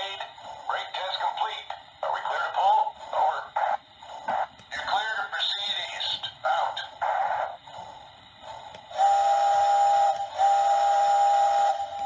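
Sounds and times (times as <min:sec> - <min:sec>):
tinny radio-like voice: 0:00.0 - 0:07.6.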